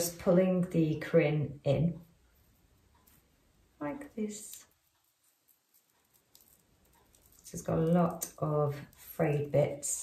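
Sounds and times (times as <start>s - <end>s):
faint rustles and ticks of thread: 0.0s - 10.0s.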